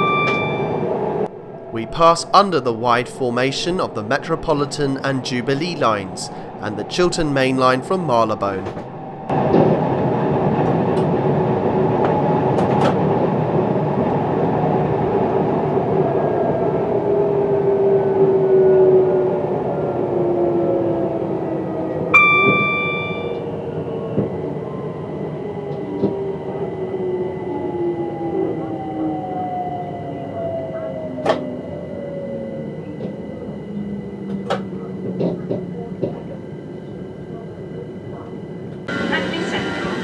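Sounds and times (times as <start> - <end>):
brief ringing tone: 0.0 - 1.0, 22.2 - 23.4.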